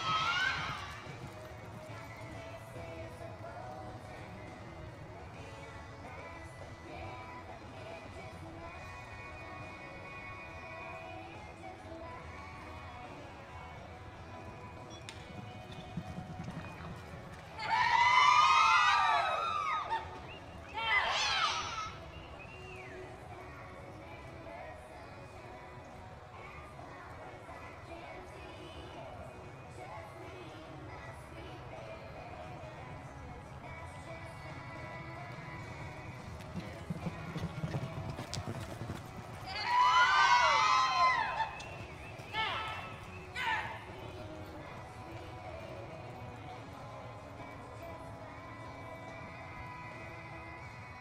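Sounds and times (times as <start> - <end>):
horse hooves thudding on dirt: 0.0 - 5.7, 14.4 - 20.7, 34.0 - 47.8.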